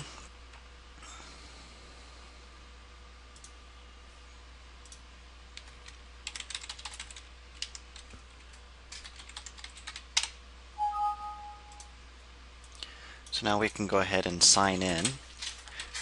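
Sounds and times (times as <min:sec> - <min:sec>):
low electrical hum: 0:00.0 - 0:16.0
typing on computer keyboard: 0:05.6 - 0:10.4.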